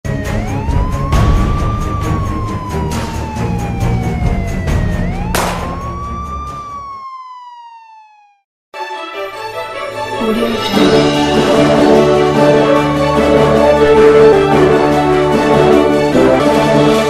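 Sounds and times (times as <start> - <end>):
music with steady beat: 5.4 - 6.1
police siren sound effect: 6.7 - 8.4.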